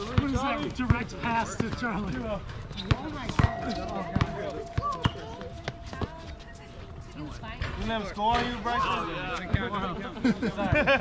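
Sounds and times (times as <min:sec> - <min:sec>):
players calling out: 0:02.8 - 0:07.2.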